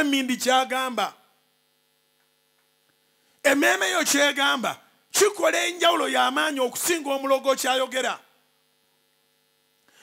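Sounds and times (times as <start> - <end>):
man's voice: 0.0 - 1.2, 3.4 - 8.3
faint electrical mains hum: 0.0 - 10.0.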